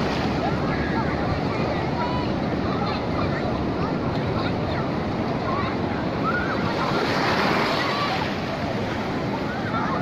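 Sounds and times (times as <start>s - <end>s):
faint voices of people: 0.0s - 10.0s
ocean surf breaking: 0.0s - 10.0s.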